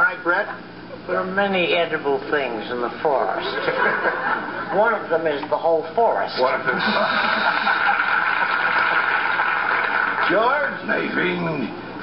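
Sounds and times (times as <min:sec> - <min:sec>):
audience laughing: 0:03.4 - 0:04.8, 0:06.7 - 0:10.2
audience applauding: 0:07.2 - 0:10.7.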